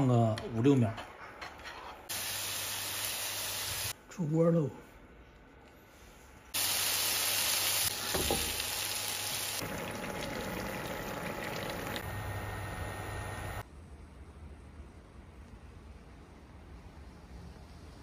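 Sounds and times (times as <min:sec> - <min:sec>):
stew boiling: 0:06.6 - 0:13.6.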